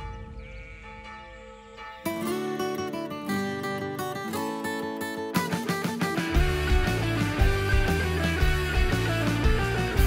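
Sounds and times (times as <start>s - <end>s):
plucked-string theme tune: 0.0s - 10.0s.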